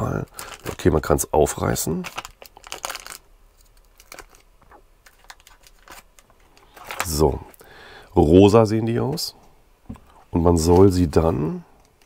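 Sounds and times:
wrapper tearing and crinkling: 0.0 - 1.1, 1.9 - 7.3.

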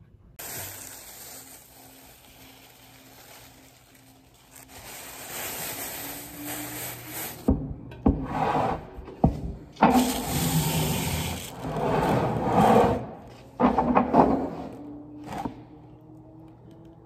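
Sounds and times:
plastic sheeting rustling: 0.4 - 7.5, 10.0 - 12.6
sliding: 9.9 - 14.7.

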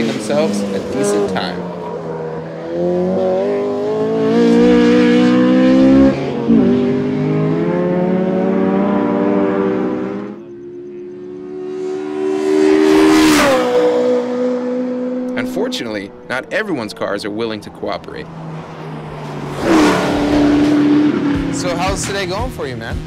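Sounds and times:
car engine revving hard: 0.0 - 16.3, 18.3 - 22.2
car passing by: 18.2 - 21.8.

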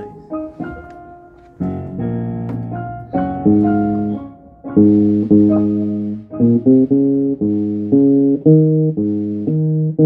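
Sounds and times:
sustained keyboard chords: 0.0 - 10.0
electric bass plucked: 1.6 - 10.0.

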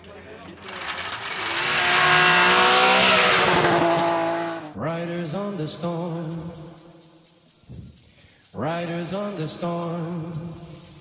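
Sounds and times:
car engine at high revs: 0.6 - 4.8.

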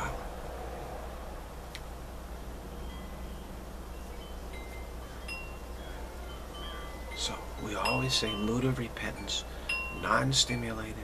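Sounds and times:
low background hum: 0.0 - 11.0
wind chimes ringing: 2.8 - 11.0.

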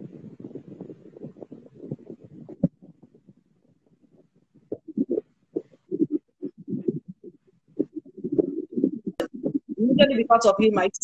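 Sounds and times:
choppy muffled voice: 0.0 - 11.0.

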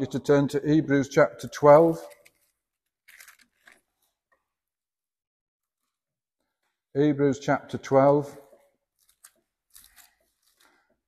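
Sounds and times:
pages being turned: 1.9 - 4.1, 9.0 - 11.0.

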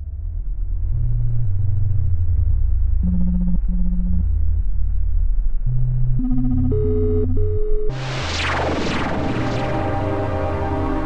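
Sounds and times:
deep synthesizer bass tones: 0.0 - 11.0.

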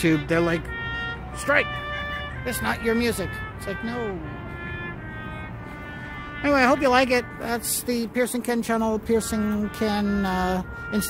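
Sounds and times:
trumpet holding long note: 0.0 - 11.0.

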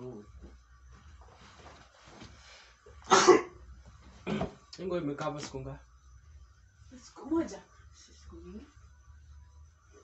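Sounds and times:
man coughing harshly: 3.0 - 3.6, 4.2 - 4.6.

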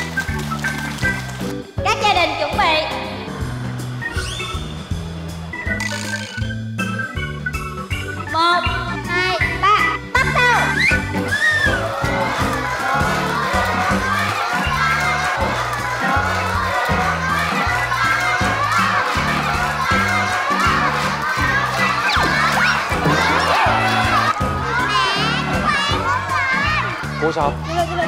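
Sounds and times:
background music with bass line: 0.0 - 28.0
children shouting and cheering: 8.6 - 28.0.

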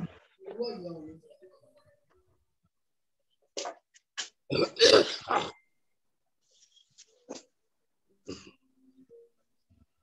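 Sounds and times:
person making rough throat noises: 4.5 - 5.6.

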